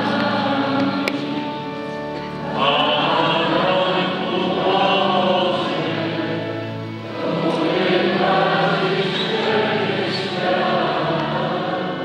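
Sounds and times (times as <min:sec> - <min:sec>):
choir singing chant: 0:00.0 - 0:12.0.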